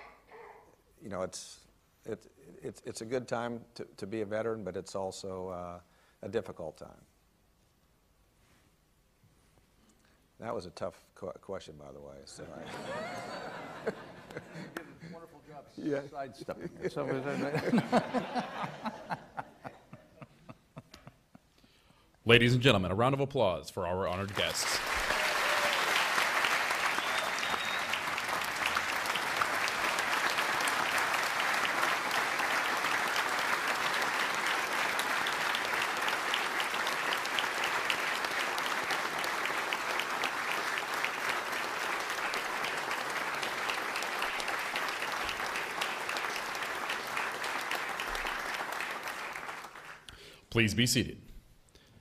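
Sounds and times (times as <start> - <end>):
audience applauding: 24.1 - 50.1.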